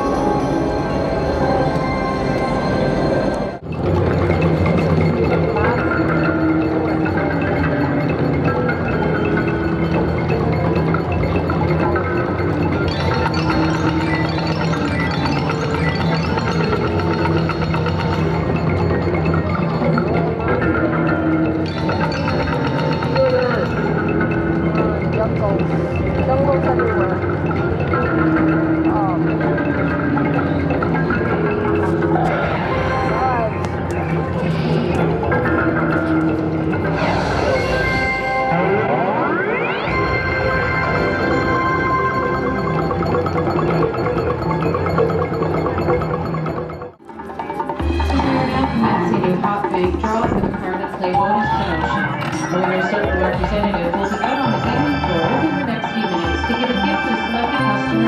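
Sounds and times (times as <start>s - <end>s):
slot machine music: 0.0s - 58.0s
casino background noise: 41.9s - 58.0s.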